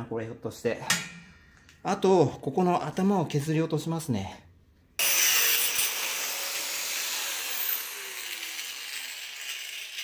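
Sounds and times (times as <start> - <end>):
angle grinder cutting steel: 5.0 - 10.0.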